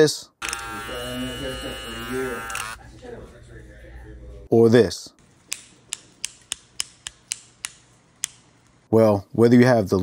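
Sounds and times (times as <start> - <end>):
hair clipper switch clicking: 2.4 - 2.7.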